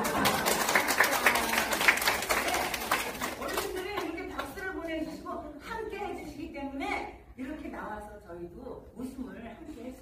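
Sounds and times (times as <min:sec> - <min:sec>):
audience clapping: 0:00.0 - 0:04.6.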